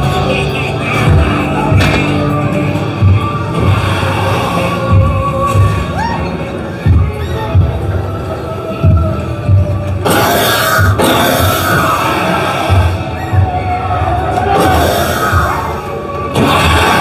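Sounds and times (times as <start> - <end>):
deep throbbing pulses: 0.0 - 6.0
dark music: 0.0 - 17.0.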